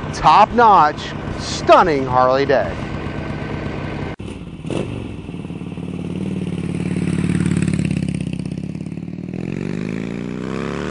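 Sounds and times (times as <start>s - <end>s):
motorcycle engine revving: 0.0s - 10.9s.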